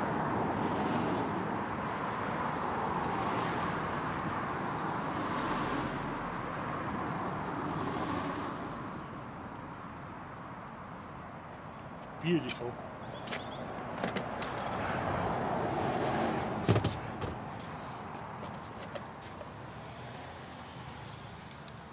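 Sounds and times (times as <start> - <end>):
road traffic rushing: 0.0 - 21.9.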